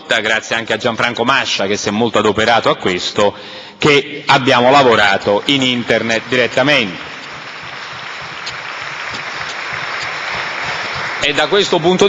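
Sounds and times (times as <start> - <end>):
audience applause: 4.9 - 12.0.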